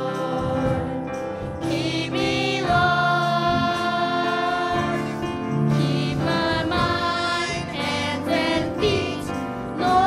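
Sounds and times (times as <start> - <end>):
youth choir singing gospel: 0.0 - 10.0.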